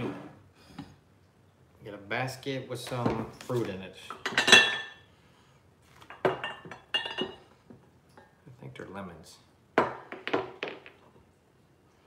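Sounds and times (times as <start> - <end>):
glass objects clinking: 4.2 - 5.0, 6.1 - 7.5.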